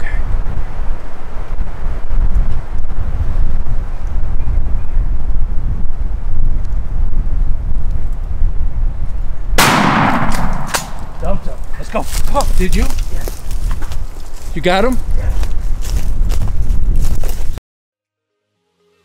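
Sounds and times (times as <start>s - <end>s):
shotgun shot: 9.6s - 11.2s.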